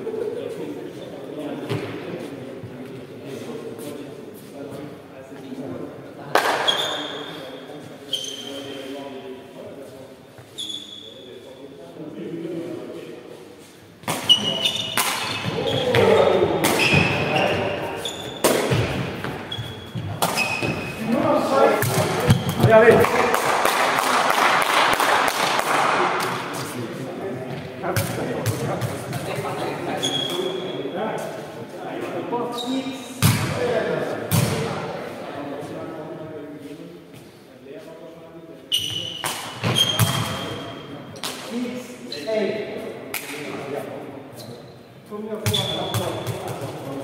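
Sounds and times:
ball kicks smacking in a hall: 18.3s - 21.0s, 33.2s - 34.8s, 39.2s - 40.6s, 45.4s - 46.8s.

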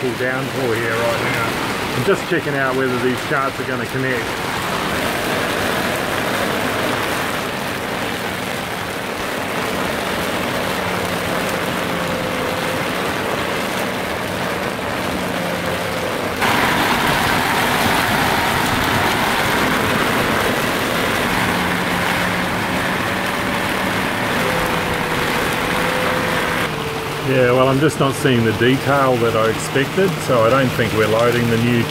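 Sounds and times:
heavy rain on a boat: 0.0s - 31.9s.

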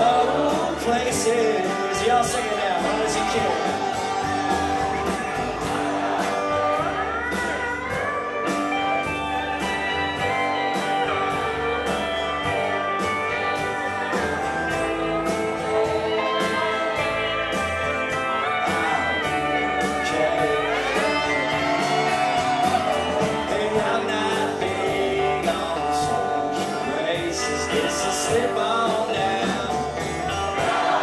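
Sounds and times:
lead guitar line bending upward: 0.0s - 31.0s
live country band instrumental: 0.0s - 31.0s.

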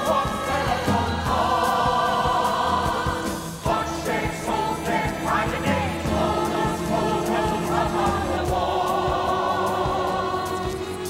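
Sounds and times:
instrumental accompaniment: 0.0s - 11.0s
singers holding long notes: 0.0s - 11.0s.

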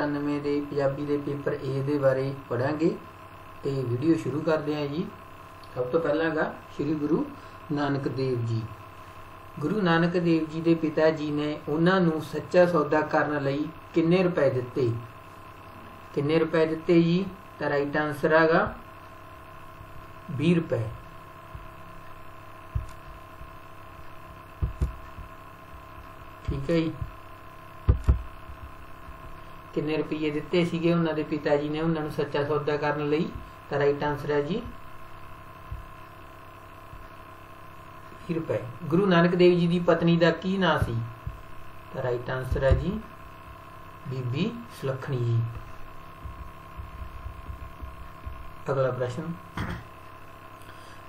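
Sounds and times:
steady electrical hum: 0.0s - 51.0s
dull low thumps: 24.6s - 25.4s, 45.6s - 48.6s.

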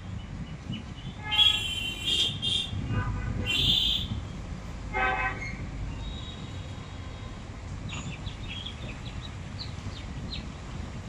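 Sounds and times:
vehicle horn toot: 1.2s - 4.2s.

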